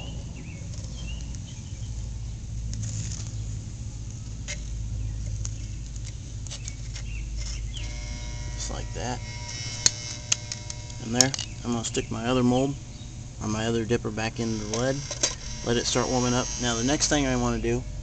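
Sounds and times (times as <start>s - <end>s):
steady low rumble: 0.0s - 18.0s
metal tool scraping a pot: 6.6s - 12.1s, 13.5s - 17.8s
steady multi-pitch tone: 7.8s - 18.0s.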